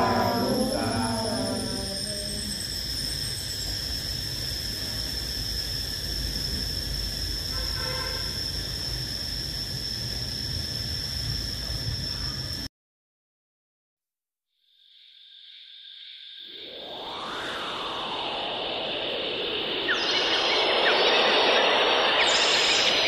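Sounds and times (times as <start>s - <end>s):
faint voice: 0.0s - 2.6s
group chanting prayer: 0.0s - 2.6s
high-pitched tone: 0.0s - 2.7s.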